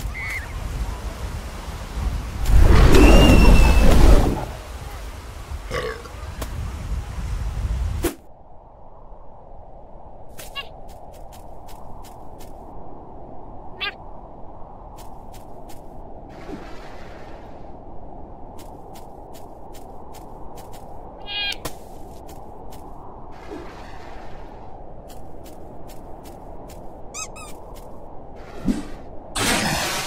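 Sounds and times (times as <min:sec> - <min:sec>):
cartoon penguin squeak: 0:10.4 - 0:10.7, 0:13.8 - 0:14.0, 0:21.2 - 0:21.6, 0:27.1 - 0:27.6
squeaky toy squeaks: 0:27.1 - 0:27.6.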